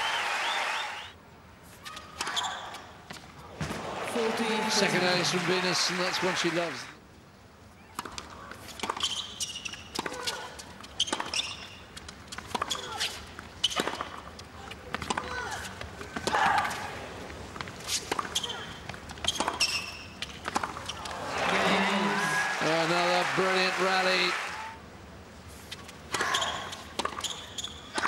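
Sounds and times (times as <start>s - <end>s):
shoes squeaking: 8.5s - 16.8s, 17.6s - 21.2s, 25.6s - 28.0s.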